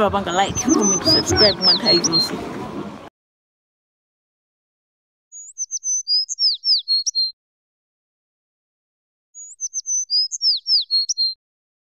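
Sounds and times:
high twittering bird chirps: 0.3s - 2.4s, 5.3s - 7.4s, 9.4s - 11.4s.

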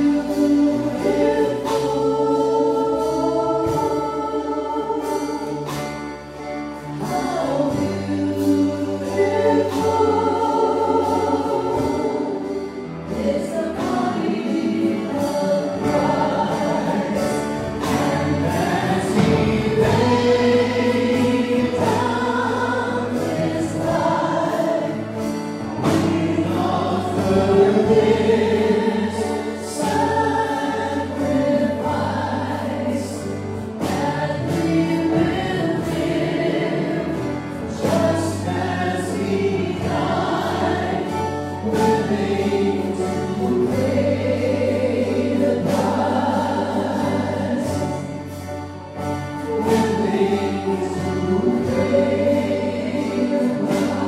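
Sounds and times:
band playing worship song: 0.0s - 54.0s
voices singing together: 0.0s - 54.0s.

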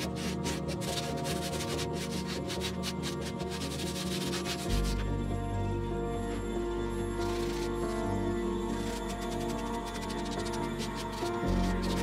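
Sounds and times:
sandpaper rubbing on pot: 0.0s - 5.1s, 7.2s - 8.1s, 8.7s - 12.0s
background music: 0.0s - 12.0s.

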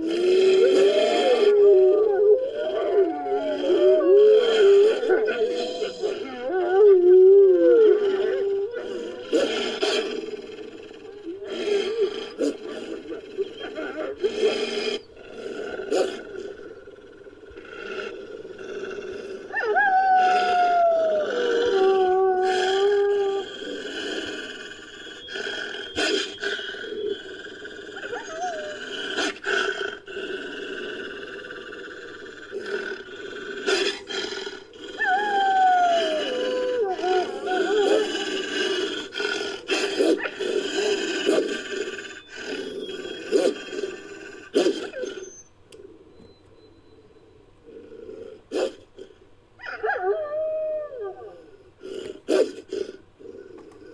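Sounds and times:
person growling: 0.0s - 45.2s.

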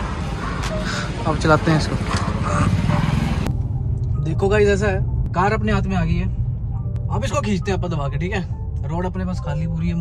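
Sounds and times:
car engine and road drone: 0.0s - 10.0s.

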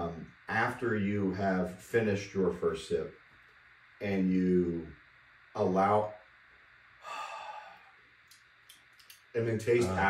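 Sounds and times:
man exhaling breathy sigh: 7.0s - 8.0s
faint clicks: 8.2s - 10.0s.

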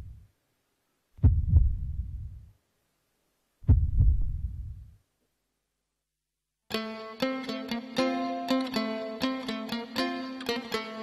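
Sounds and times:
deep heartbeat thumps: 1.2s - 2.5s, 3.6s - 5.0s.

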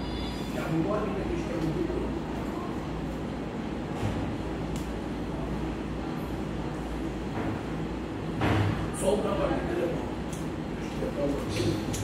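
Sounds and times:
room noise hum and rumble: 0.0s - 12.0s.

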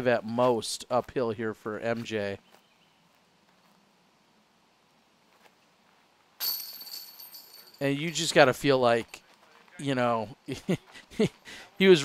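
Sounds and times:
disc golf chains jingling: 6.4s - 9.7s.

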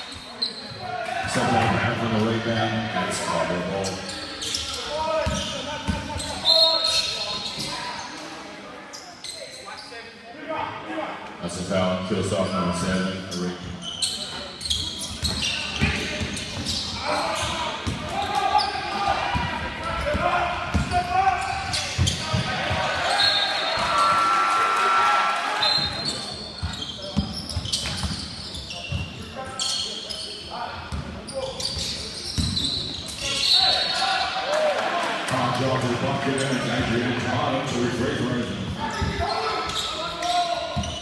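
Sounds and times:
indistinct shouts and chatter: 14.0s - 26.6s, 31.5s - 41.0s.

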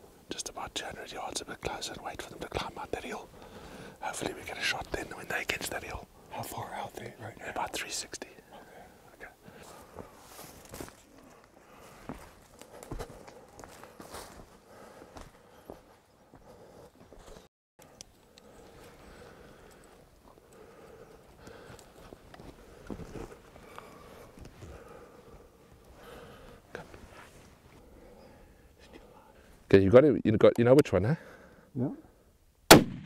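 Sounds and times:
footsteps through dry scrub: 9.6s - 17.4s.

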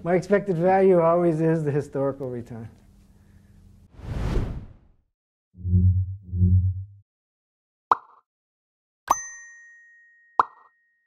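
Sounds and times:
bell-like ding: 9.1s - 11.0s.

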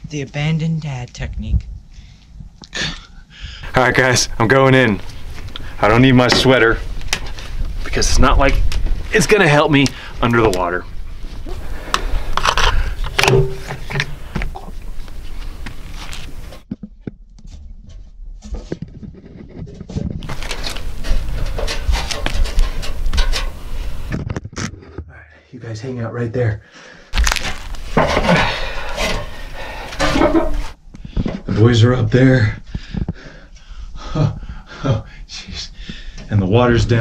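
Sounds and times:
person climbing down wooden ladder: 11.3s - 25.1s, 27.2s - 31.5s.

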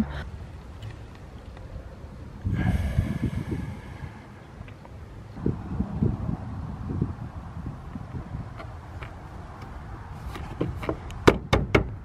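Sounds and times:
wind buffeting microphone: 1.7s - 12.0s.

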